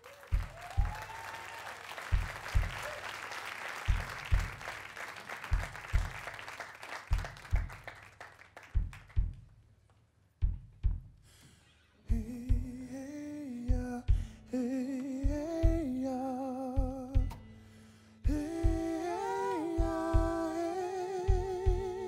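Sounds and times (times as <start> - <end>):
audience applauding and cheering: 0.0 - 9.3.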